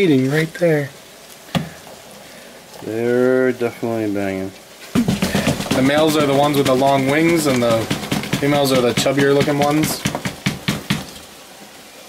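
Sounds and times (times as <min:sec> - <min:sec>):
cardboard tapping on plastic tub: 0:05.0 - 0:11.2.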